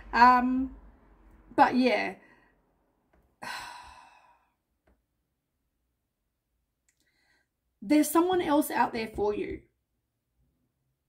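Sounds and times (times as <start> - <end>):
woman sighing: 3.4 - 4.6.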